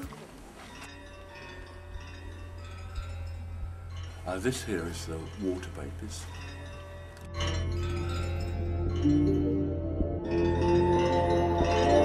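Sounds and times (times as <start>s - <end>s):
tinkling chime tones: 0.0s - 12.0s
steady low hum: 0.1s - 9.2s.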